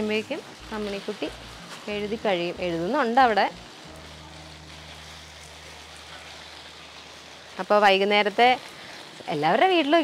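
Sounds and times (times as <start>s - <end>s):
hose spraying water on plants: 0.0s - 10.0s.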